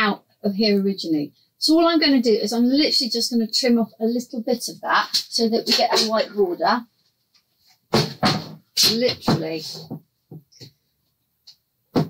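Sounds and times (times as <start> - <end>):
woman speaking: 0.0 - 6.9, 8.8 - 9.9.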